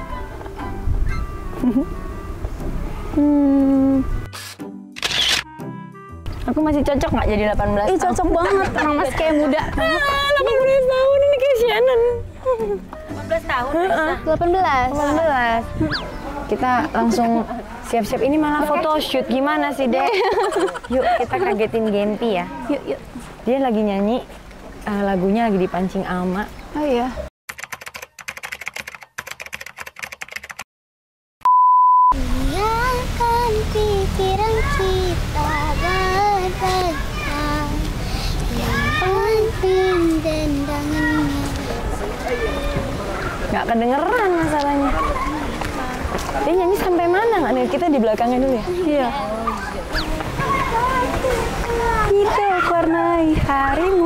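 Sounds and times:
background music: 0:00.0 - 0:19.8
camera shutter sound effects: 0:04.3 - 0:05.5
keyboard typing clicks: 0:27.5 - 0:30.6.

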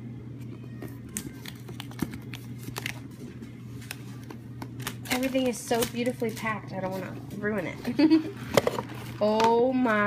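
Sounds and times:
steady low hum: 0:00.0 - 0:10.0
paper rustling: 0:01.0 - 0:07.0.

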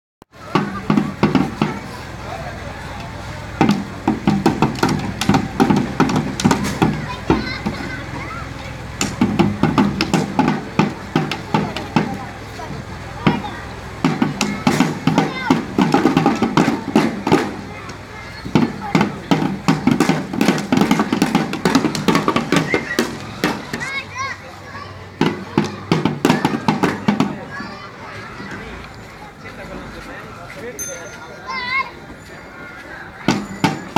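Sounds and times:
children beating drums with sticks: 0:00.3 - 0:29.6, 0:33.2 - 0:33.9
children's voices: 0:00.3 - 0:33.9.

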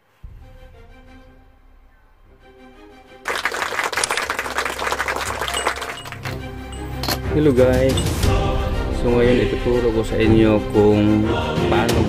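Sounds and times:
loud applause: 0:03.3 - 0:06.9
soft background music: 0:06.4 - 0:12.0.

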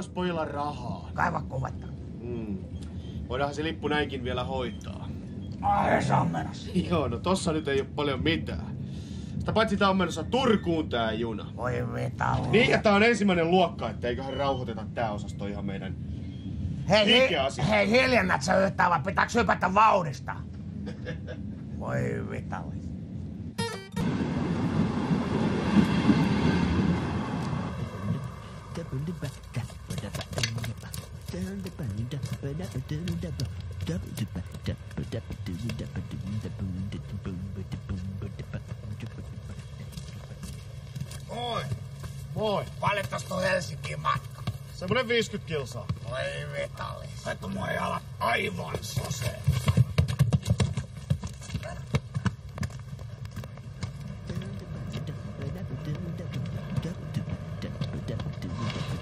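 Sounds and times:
guitar music: 0:23.6 - 0:24.2
passenger train passing: 0:23.6 - 0:29.5.

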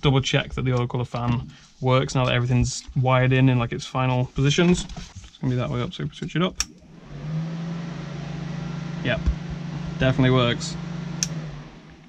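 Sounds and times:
fan running with low hum: 0:06.6 - 0:12.0.

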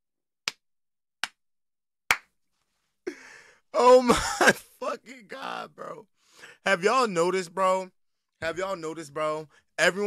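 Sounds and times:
hand claps: 0:00.4 - 0:00.6, 0:01.2 - 0:01.4, 0:02.1 - 0:02.4.

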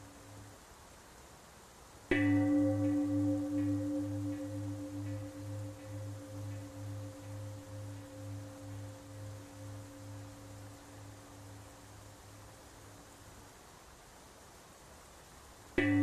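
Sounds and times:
bell ringing with wavering tone: 0:02.1 - 0:11.7, 0:15.8 - 0:16.0.

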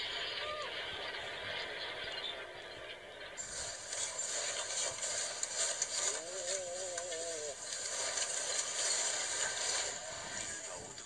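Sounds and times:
building rattling in earthquake: 0:03.4 - 0:11.0.

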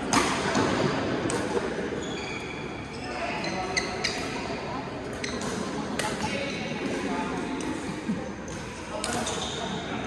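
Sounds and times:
shoes squeaking on court: 0:01.6 - 0:06.8, 0:08.5 - 0:10.0.

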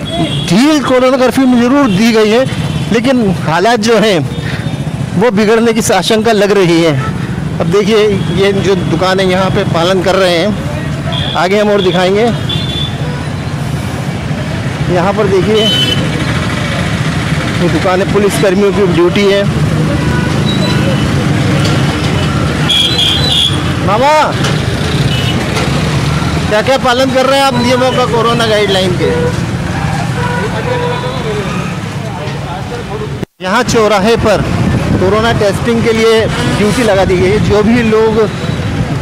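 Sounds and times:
road traffic rumble: 0:00.0 - 0:39.0
street noise drone: 0:00.0 - 0:39.0.

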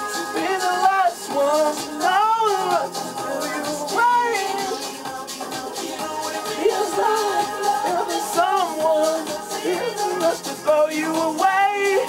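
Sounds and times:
backing track with steady beat: 0:00.0 - 0:12.0
man singing into a microphone: 0:00.0 - 0:12.0.

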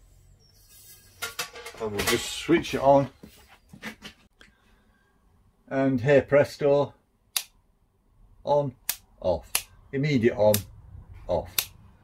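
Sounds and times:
light switch flicked: 0:07.3 - 0:07.6, 0:08.8 - 0:09.7, 0:11.5 - 0:11.8.

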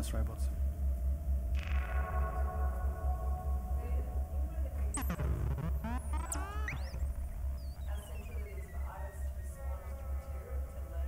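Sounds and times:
low hum: 0:00.5 - 0:11.0
synthesizer tones gliding: 0:04.9 - 0:10.5.

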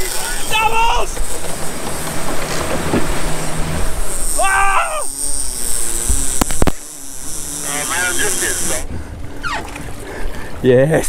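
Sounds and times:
rush of boat wake: 0:00.0 - 0:06.4
outboard motor humming: 0:00.0 - 0:11.0.

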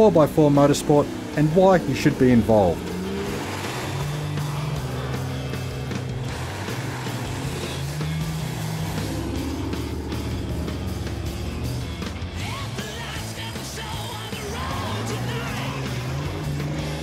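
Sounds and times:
background music: 0:00.0 - 0:17.0
truck engines running hard: 0:00.0 - 0:17.0.

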